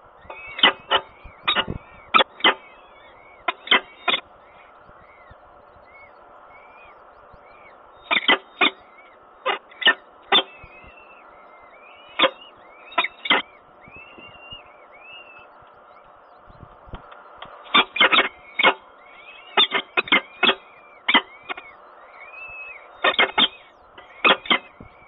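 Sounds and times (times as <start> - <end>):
falcon chicks cheeping: 0.0 - 25.0.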